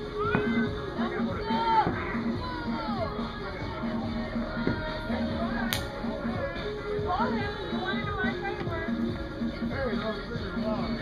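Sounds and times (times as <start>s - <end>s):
sharp pop: 5.7s - 5.9s.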